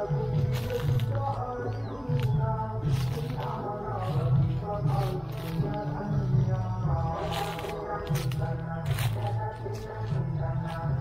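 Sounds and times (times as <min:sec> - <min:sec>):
background music with bass and melody: 0:00.0 - 0:11.0.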